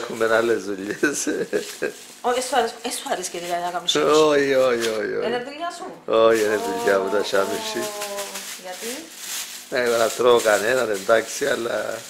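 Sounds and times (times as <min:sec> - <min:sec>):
plastic bags handled: 0:00.0 - 0:05.4, 0:06.3 - 0:12.0
person talking: 0:06.2 - 0:09.0.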